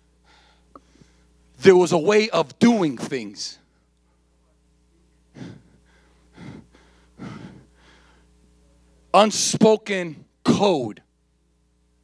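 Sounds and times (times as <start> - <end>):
low steady hum: 0.0 - 12.0
man breathing into microphone: 5.4 - 8.4.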